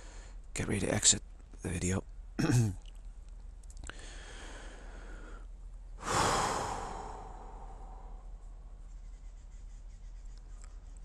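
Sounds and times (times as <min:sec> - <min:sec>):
person sighing: 0:06.0 - 0:08.0.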